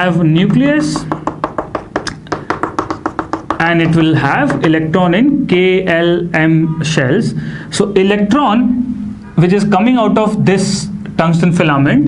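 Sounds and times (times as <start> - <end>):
chalk tapping on chalkboard: 0.5 - 4.8.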